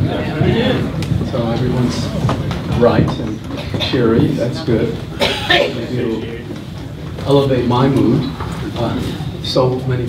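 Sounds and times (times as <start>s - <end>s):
man speaking into a microphone: 0.0s - 10.0s
man coughing: 5.2s - 5.9s.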